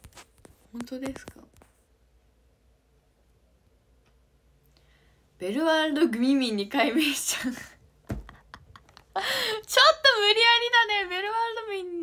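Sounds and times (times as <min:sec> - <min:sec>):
low thump: 0:08.0 - 0:08.5.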